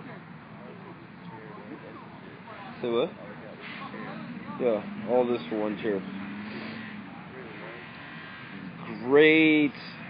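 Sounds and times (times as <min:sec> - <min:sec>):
buzzy background noise: 0:00.0 - 0:10.0.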